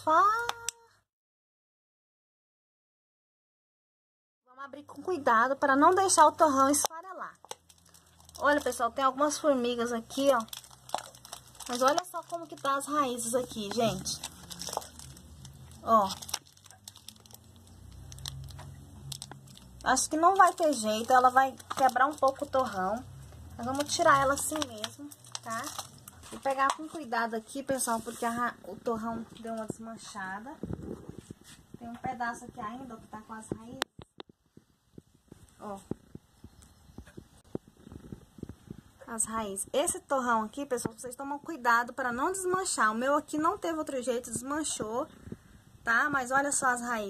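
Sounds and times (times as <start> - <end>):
plastic wrapping crinkling: 6.0 - 29.8
hands crumbling potting soil: 6.7 - 29.8.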